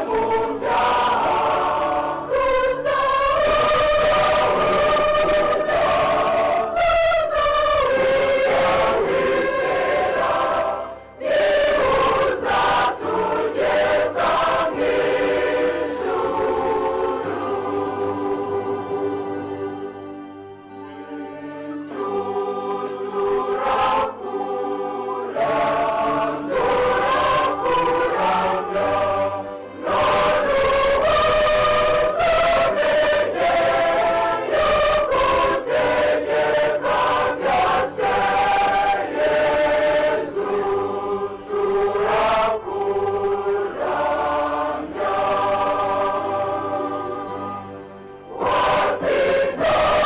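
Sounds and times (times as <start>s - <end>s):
church choir singing: 0.0s - 50.0s.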